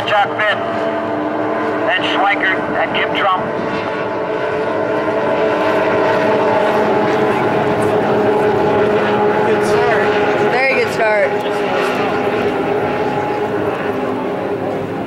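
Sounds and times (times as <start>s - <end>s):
racing boat engines whining: 0.0s - 15.0s.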